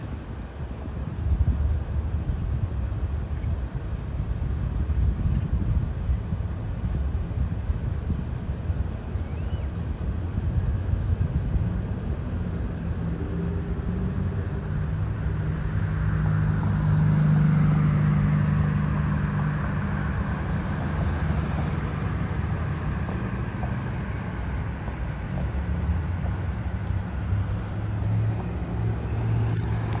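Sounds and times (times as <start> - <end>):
cars driving: 12.8 - 30.0
vehicle engine passing close: 26.8 - 30.0.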